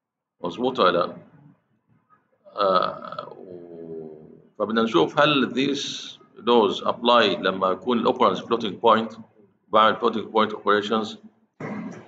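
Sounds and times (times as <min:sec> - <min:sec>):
man's long drawn-out vocal sound: 0:02.8 - 0:04.4.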